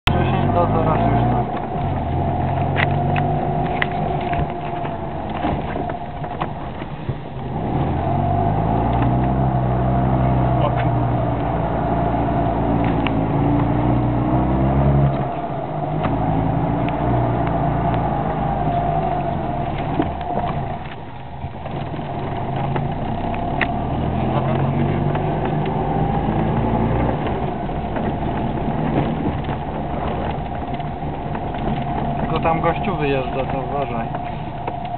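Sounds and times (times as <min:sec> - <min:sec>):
small car engine revving: 0:00.1 - 0:34.9.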